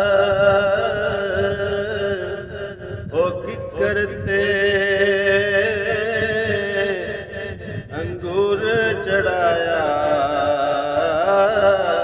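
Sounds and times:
man singing melismatic verse: 0:00.0 - 0:12.0.

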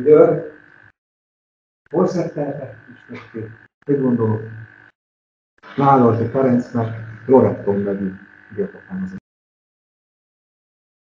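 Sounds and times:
man making hesitation sounds: 0:00.0 - 0:00.5, 0:02.0 - 0:04.6, 0:05.7 - 0:09.2
steady thin tone: 0:05.6 - 0:09.2.

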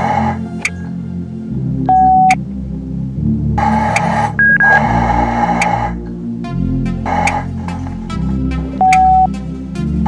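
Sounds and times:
background music: 0:00.0 - 0:10.0
short electronic beeps: 0:01.9 - 0:02.4, 0:04.4 - 0:04.8, 0:08.9 - 0:09.3.

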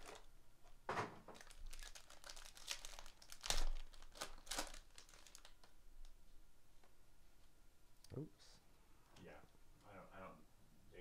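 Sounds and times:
foil wrapper tearing and crinkling: 0:00.0 - 0:00.3, 0:01.3 - 0:05.7.

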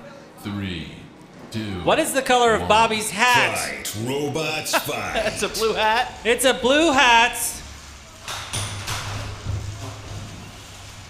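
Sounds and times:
low hum of spinning motors: 0:00.0 - 0:11.0.

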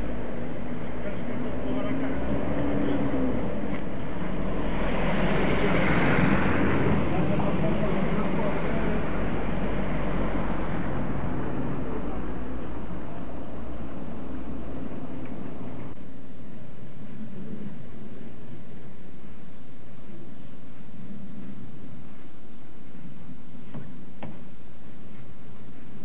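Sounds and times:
van driving past: 0:00.0 - 0:16.0
street noise: 0:00.0 - 0:26.0.

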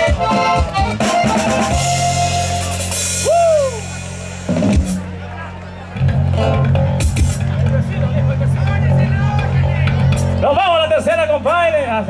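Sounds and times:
button accordion playing: 0:00.0 - 0:03.2
electric bass guitar: 0:00.0 - 0:12.0.

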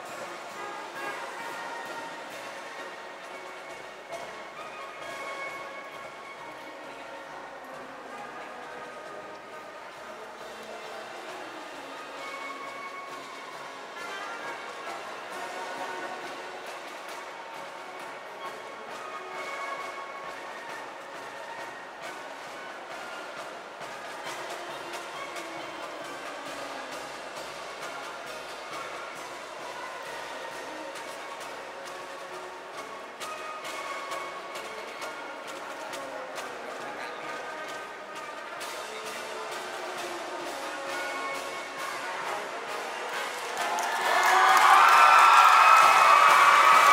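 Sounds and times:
brass horns sustained notes: 0:00.0 - 0:46.9.

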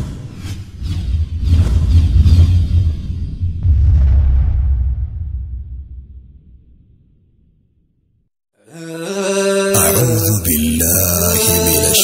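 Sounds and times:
deep steady rumble: 0:01.7 - 0:07.0.

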